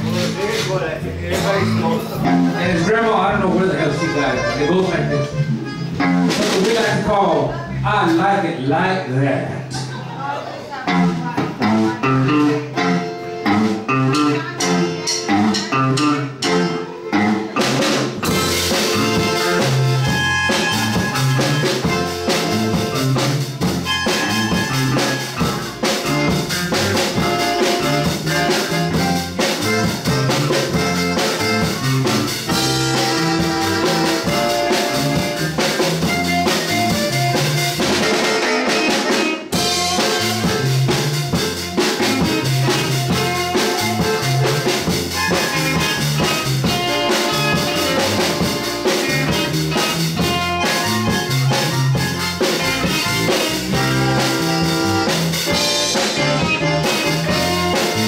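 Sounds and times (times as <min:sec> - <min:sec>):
button accordion: 0:00.0 - 0:08.2, 0:10.8 - 0:58.0
drum kit with cymbals: 0:00.0 - 0:08.4, 0:10.8 - 0:58.0
electric guitar riff: 0:00.0 - 0:08.4, 0:10.7 - 0:58.0
electric bass: 0:00.0 - 0:58.0.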